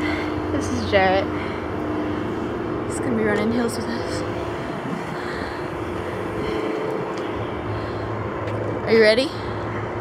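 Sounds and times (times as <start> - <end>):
distant engine drone: 0.0 - 10.0
low hum: 0.0 - 10.0.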